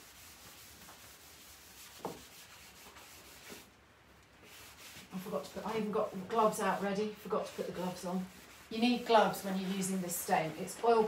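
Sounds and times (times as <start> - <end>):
cloth rubbing on wood: 0.0 - 3.7, 4.4 - 11.0.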